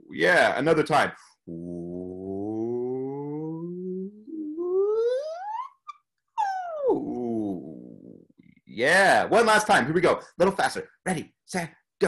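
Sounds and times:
man's voice sliding up and down: 0.0s - 9.8s.

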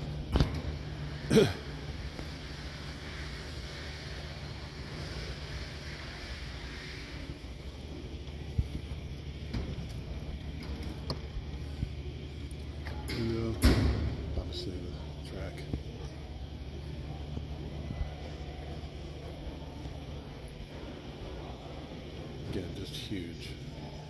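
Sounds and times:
murmur of distant voices: 0.0s - 24.0s
steady low hum: 0.0s - 24.0s.

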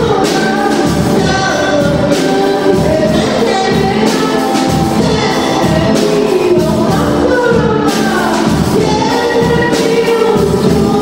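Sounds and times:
girl singing into a microphone: 0.0s - 11.0s
live band playing: 0.0s - 11.0s.

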